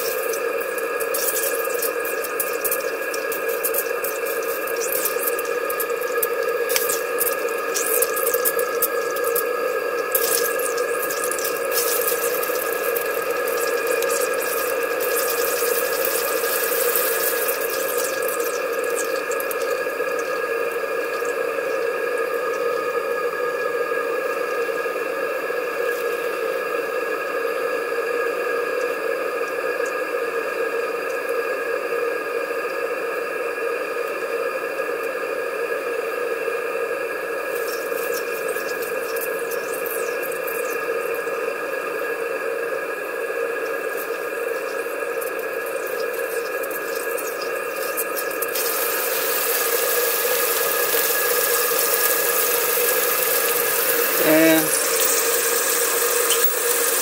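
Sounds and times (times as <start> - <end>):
steam engine hissing and humming: 45.0 - 57.0.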